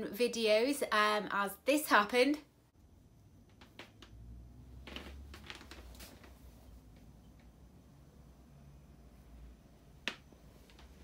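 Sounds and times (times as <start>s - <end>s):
faint low hum: 2.5s - 11.0s.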